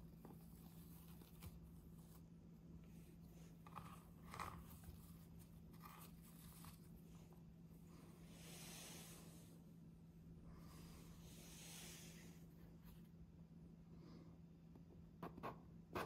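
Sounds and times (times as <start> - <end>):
ribbon rustling and scraping: 0.0 - 7.4
low steady hum: 0.0 - 16.0
soft hissing: 6.9 - 13.0.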